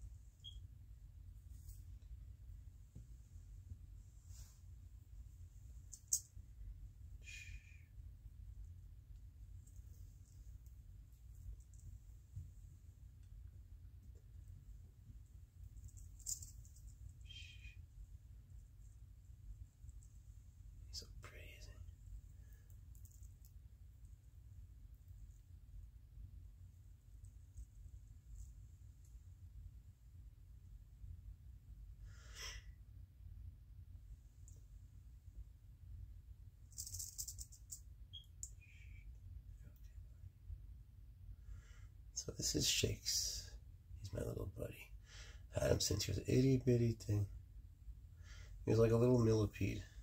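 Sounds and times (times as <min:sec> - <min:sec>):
low room rumble: 0:00.0 - 0:50.0
faint whisper: 0:07.1 - 0:08.1, 0:17.2 - 0:17.9, 0:20.8 - 0:22.8, 0:38.5 - 0:40.2, 0:42.2 - 0:47.3, 0:48.6 - 0:50.0.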